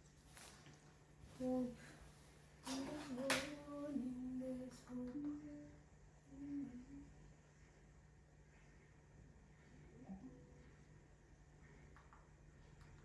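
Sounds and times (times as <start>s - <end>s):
faint electrical hum: 0.0s - 13.0s
woman humming: 2.7s - 7.2s.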